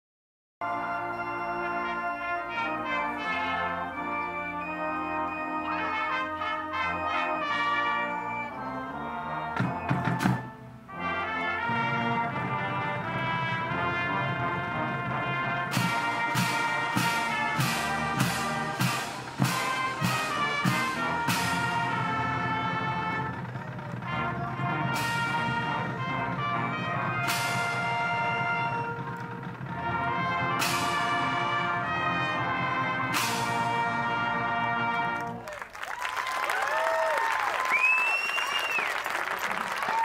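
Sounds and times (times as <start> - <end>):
brass sustained chords: 0.6 - 35.5
marching band playing: 0.6 - 40.0
percussion hits: 14.9 - 31.9.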